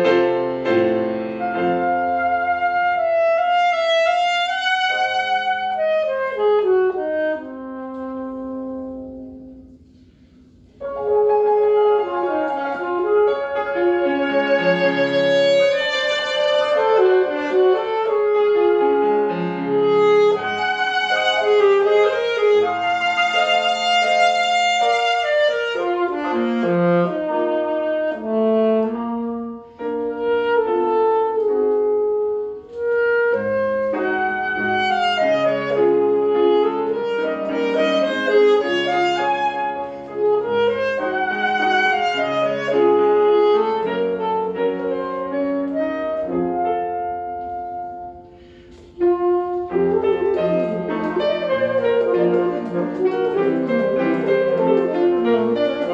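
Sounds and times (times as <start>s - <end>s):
alto saxophone melody: 0.0s - 55.9s
piano accompaniment: 0.0s - 55.9s.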